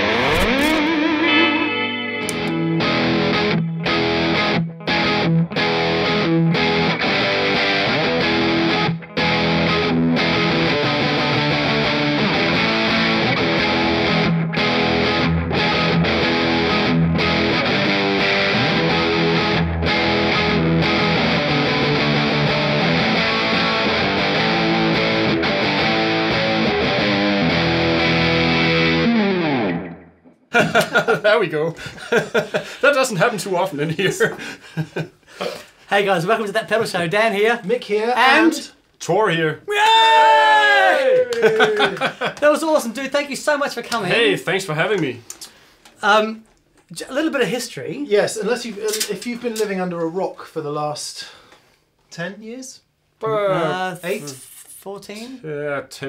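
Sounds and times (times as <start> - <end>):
distorted electric guitar riff: 0.0 - 30.4.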